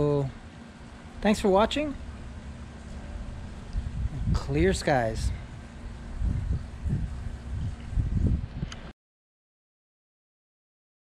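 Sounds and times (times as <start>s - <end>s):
faint steady hum: 0.0s - 8.9s
wind buffeting microphone: 2.0s - 8.9s.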